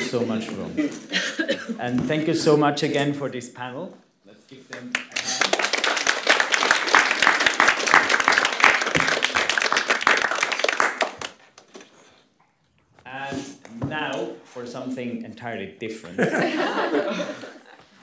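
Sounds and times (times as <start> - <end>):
audience applause: 4.9 - 11.6.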